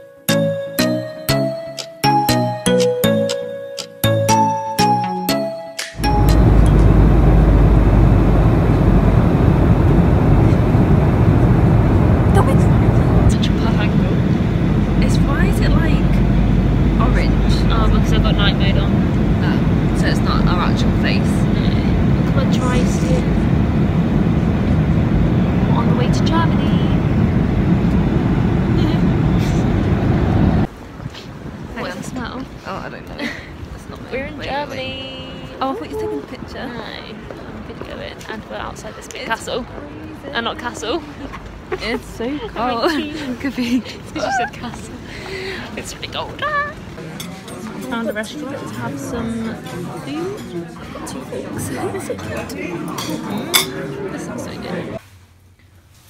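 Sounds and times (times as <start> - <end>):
airliner cabin rumble: 6.0 - 39.0.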